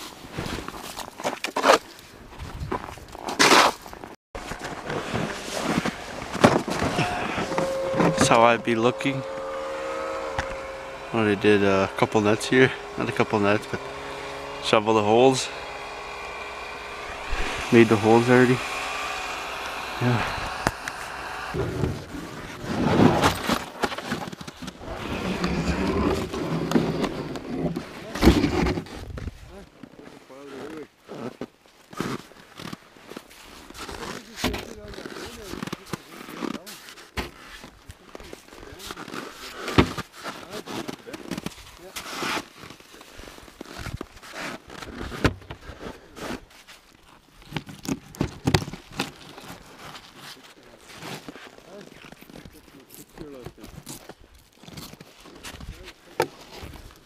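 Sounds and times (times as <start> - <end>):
gear knocking and scraping on snow: 0.0 - 57.0.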